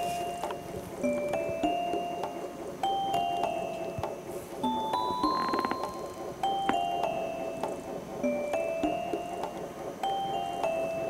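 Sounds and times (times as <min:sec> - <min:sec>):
gentle bell-like music: 0:00.0 - 0:11.0.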